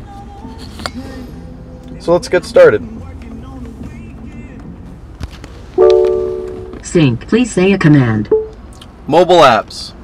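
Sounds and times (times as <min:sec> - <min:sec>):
button click: 0:05.8 - 0:06.8
in-car voice command chime: 0:05.8 - 0:06.8.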